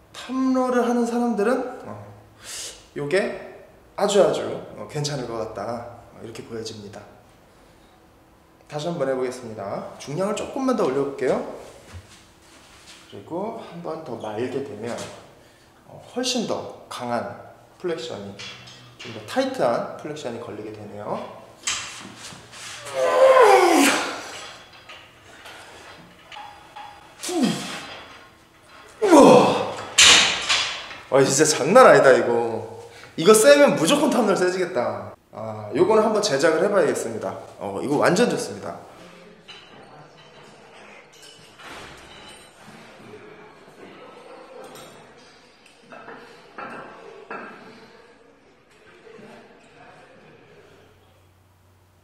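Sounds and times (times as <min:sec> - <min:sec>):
man groaning with effort: 0:22.8 - 0:24.4, 0:27.2 - 0:27.9, 0:29.0 - 0:29.9
indistinct voices in echoing hall: 0:22.8 - 0:24.5, 0:28.9 - 0:35.2, 0:42.5 - 0:51.3.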